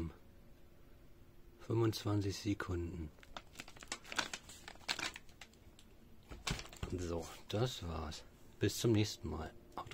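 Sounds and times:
packaging crinkling and rustling: 3.1 - 7.2.

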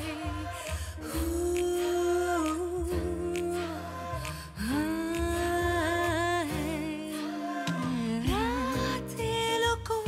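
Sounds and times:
bass line and soft beat: 0.0 - 6.9, 7.7 - 10.0.

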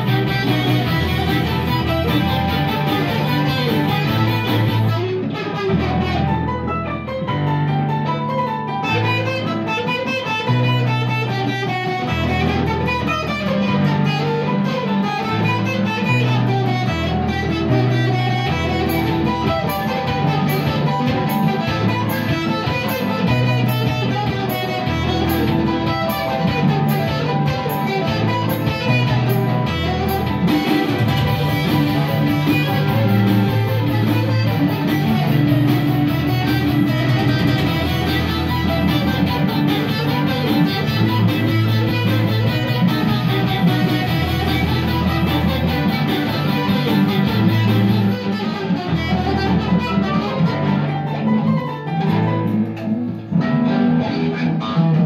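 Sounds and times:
electric guitar through amp: 0.0 - 55.0
sequenced backing track bass notes: 0.0 - 55.0.

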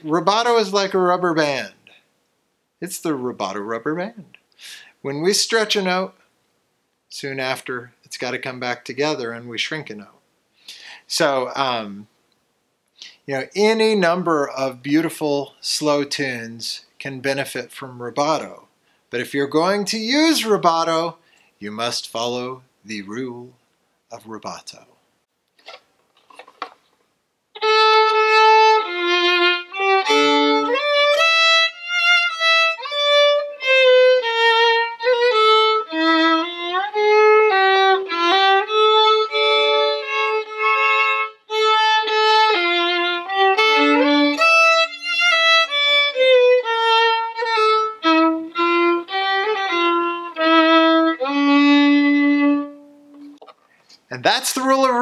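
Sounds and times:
solo fiddle slow melody: 27.5 - 53.4.

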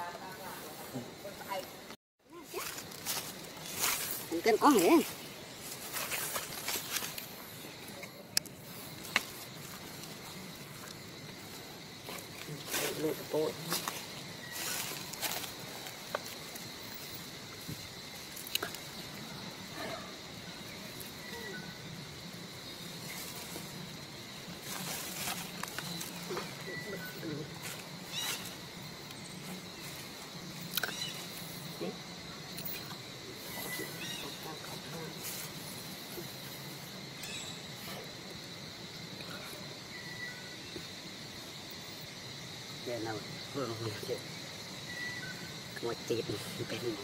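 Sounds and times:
high insect drone: 0.0 - 47.0.

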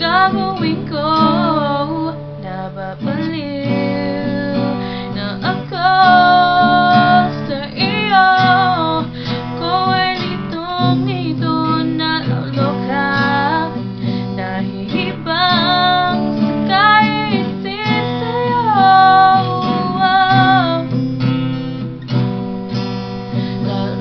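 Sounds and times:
woman singing: 0.0 - 21.3, 23.3 - 24.0
acoustic guitar strumming: 0.0 - 24.0.

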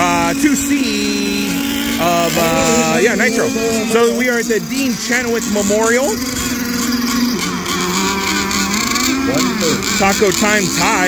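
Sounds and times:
model boat engines revving high: 0.0 - 11.0.

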